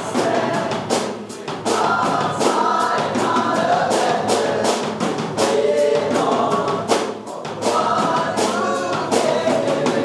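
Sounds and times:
live worship band playing: 0.0s - 10.0s.

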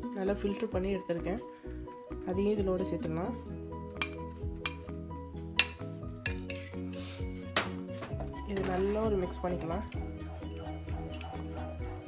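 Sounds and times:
background music: 0.0s - 12.0s
metal spoon clinking on pot: 4.0s - 4.9s, 5.6s - 6.8s.

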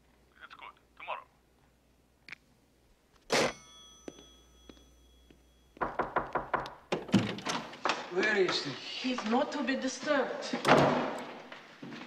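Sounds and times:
knocking on wooden door: 5.8s - 7.3s.

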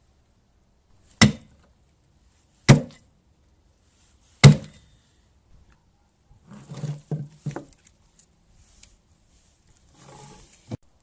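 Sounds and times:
axe chopping: 1.2s - 1.6s, 2.7s - 3.0s, 4.4s - 4.8s.

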